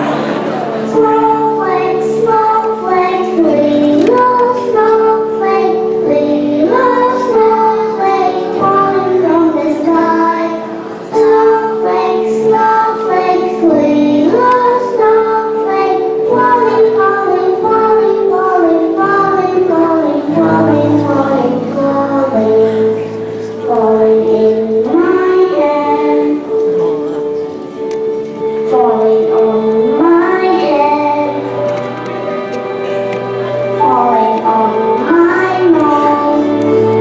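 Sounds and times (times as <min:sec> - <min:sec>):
instrumental accompaniment: 0:00.0 - 0:37.0
young children singing: 0:00.0 - 0:37.0.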